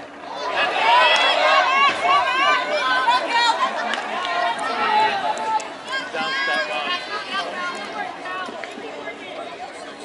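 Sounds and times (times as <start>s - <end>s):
women calling and chattering: 0.0s - 10.0s.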